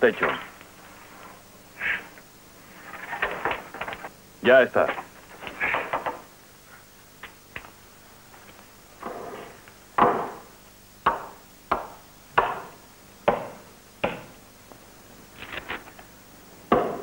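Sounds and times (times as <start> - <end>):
tool striking wood: 10.0 - 10.4, 11.0 - 14.3, 16.7 - 17.0.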